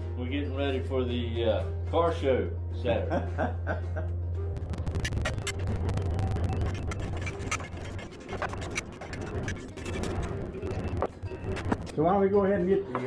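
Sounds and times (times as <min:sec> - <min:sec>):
faint background music: 0:00.0 - 0:05.4, 0:09.6 - 0:13.0
low rumble: 0:04.5 - 0:12.0.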